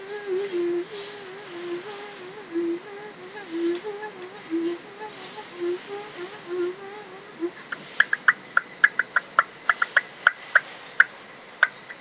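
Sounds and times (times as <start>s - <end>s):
beatboxing clicks and pops: 7.7s - 12.0s.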